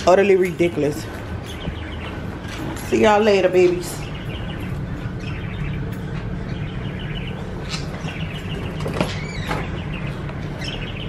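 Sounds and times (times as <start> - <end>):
budgerigars chirping: 0.0 - 11.0.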